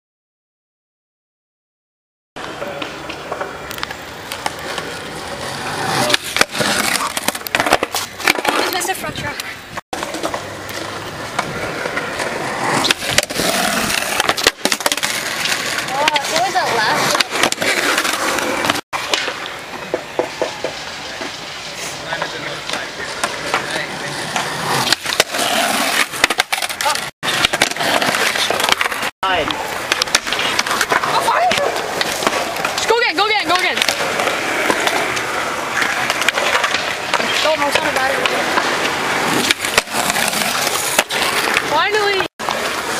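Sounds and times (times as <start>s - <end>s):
skateboard clattering: 2.4s - 42.9s
skateboard wheels rolling on concrete: 2.4s - 42.9s
skateboard scraping concrete ledge: 2.5s - 42.9s.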